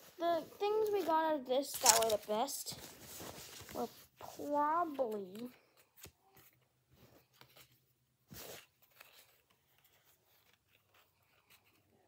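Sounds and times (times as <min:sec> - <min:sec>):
cards sliding and clicking: 0:01.7 - 0:02.3.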